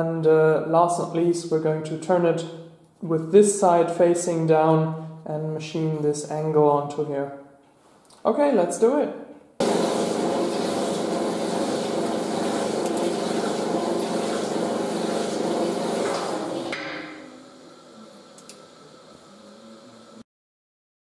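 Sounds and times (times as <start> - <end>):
gear whine: 9.6 - 20.2.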